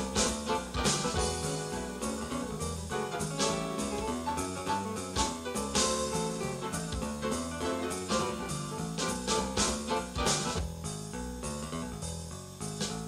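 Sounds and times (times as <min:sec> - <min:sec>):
bass line: 0:00.0 - 0:13.0
electronic jazz groove: 0:00.0 - 0:13.0.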